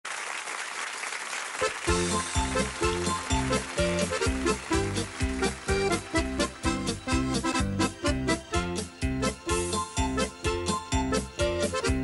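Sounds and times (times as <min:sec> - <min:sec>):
audience applauding: 0:00.0 - 0:07.1
band playing with bass line: 0:01.8 - 0:12.0.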